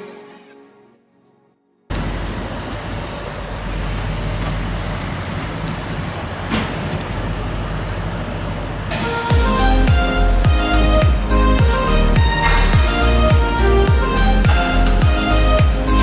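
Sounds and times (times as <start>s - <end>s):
buses and cars in traffic: 1.9s - 16.0s.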